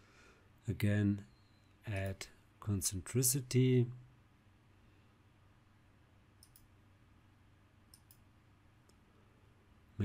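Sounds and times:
computer mouse clicks: 0:06.4 - 0:06.7, 0:07.9 - 0:09.0.

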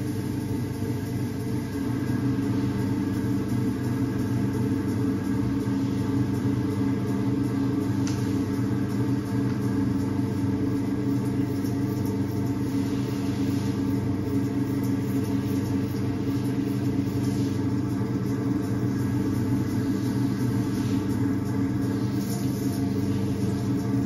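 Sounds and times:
potter's wheel motor humming: 0:00.0 - 0:24.0.

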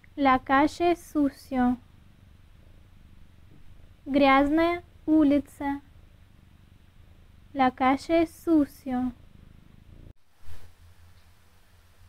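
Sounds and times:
faint low rumble with flutter: 0:00.4 - 0:12.0.

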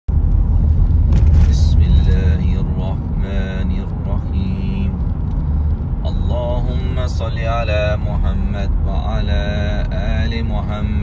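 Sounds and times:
car driving rumble from inside: 0:00.1 - 0:11.0.

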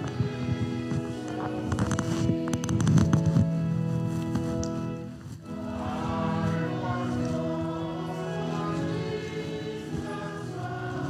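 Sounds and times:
clicks: 0:00.0 - 0:03.5
congregation singing a hymn: 0:00.0 - 0:11.0
organ playing: 0:00.0 - 0:11.0.

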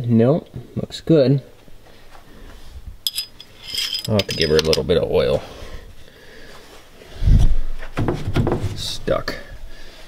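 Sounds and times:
dipstick clinking in tube: 0:03.1 - 0:04.8.

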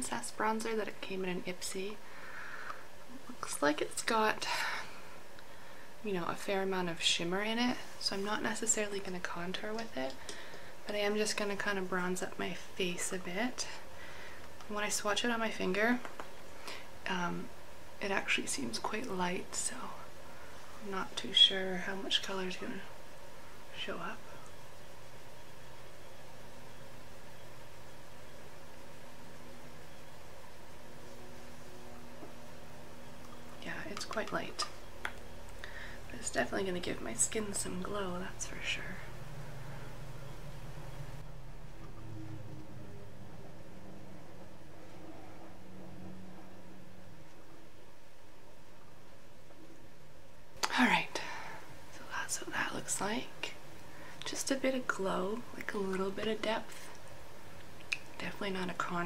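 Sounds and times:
background hiss: 0:00.0 - 0:59.0
faint constant hum: 0:00.0 - 0:59.0
woman whispering: 0:50.7 - 0:51.2.

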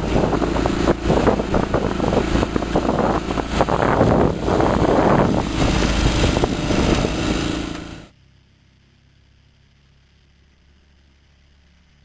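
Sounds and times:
water rushing past hulls: 0:00.0 - 0:08.1
wind buffeting microphone: 0:00.0 - 0:08.1.

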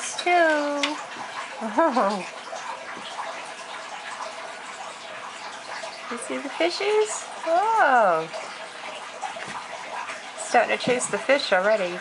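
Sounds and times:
tank filter water splashing: 0:00.0 - 0:12.0.

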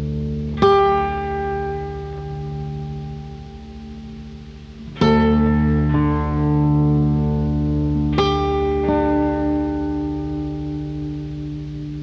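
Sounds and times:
blues guitar chord ringing: 0:00.0 - 0:12.0.

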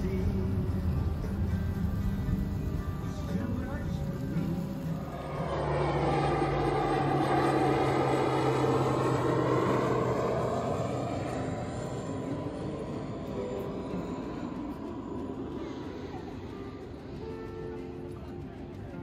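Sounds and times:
airplane passing overhead: 0:00.0 - 0:19.0.

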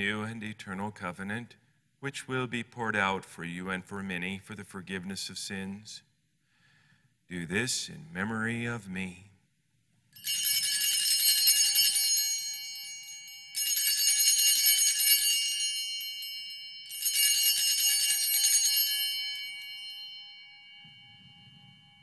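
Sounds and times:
small bells jingling: 0:10.2 - 0:22.0.

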